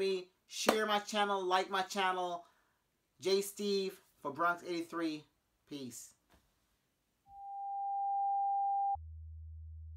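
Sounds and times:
electronic beep tone: 7.3 - 9.0.

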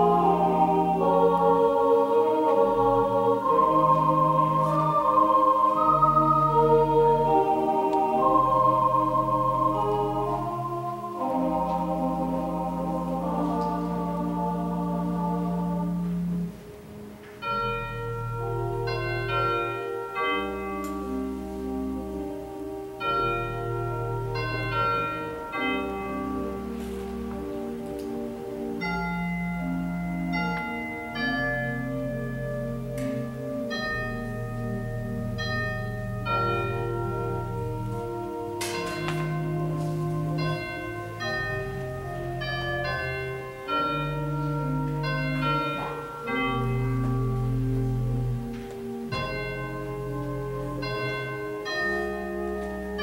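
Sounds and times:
slow bell-like chords: 0.0 - 16.8, 17.4 - 53.0
church organ music: 0.0 - 53.0.

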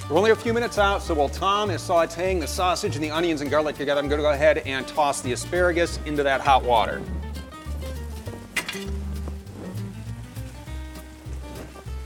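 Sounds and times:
background music with bass line: 0.0 - 12.0
food sizzling in a pan: 7.0 - 12.0.

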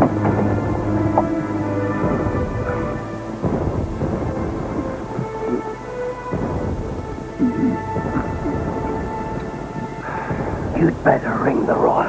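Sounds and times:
deep rumbling booms: 0.0 - 12.0
music with long held notes: 0.0 - 12.0.

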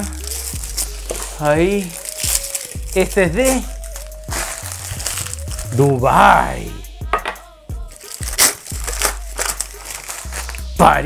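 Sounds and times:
packing paper crinkling: 0.0 - 6.0, 7.9 - 10.8
background music: 0.0 - 11.0.

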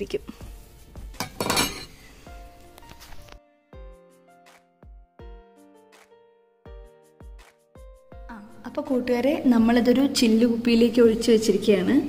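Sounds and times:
metal pots and utensils clinking: 1.2 - 2.1
pots clattering: 1.2 - 2.1.

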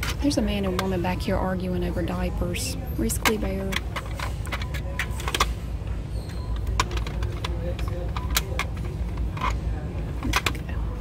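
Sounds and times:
low store hum: 0.0 - 11.0.

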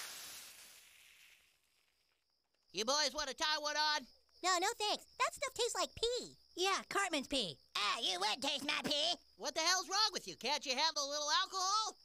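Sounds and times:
steam hissing: 0.0 - 1.0.

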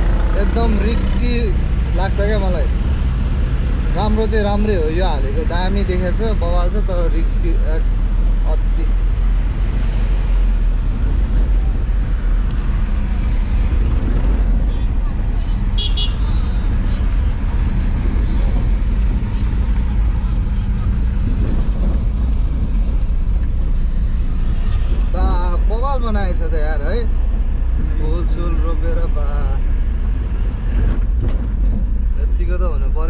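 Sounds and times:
vehicle engine and road rumble: 0.0 - 33.0.

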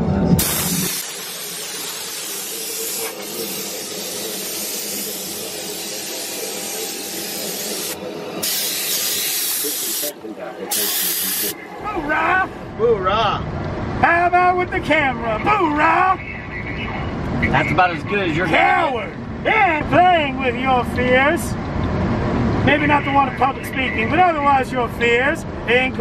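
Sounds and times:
spraying hiss bursts: 0.4 - 11.6
steady hiss: 0.4 - 11.6.

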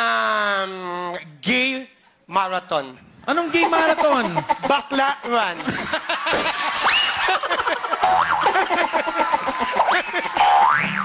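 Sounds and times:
audience laughing: 3.3 - 10.6
audience clapping: 7.6 - 10.9.

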